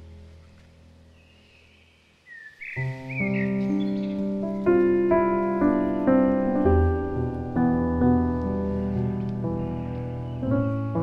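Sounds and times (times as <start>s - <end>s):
forest background: 0.0s - 11.0s
songbird chirping: 0.0s - 11.0s
slow solo piano chords: 2.8s - 11.0s.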